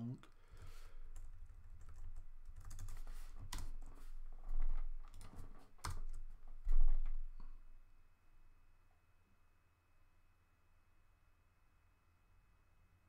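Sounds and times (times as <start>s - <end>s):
computer keyboard typing: 1.1s - 6.2s.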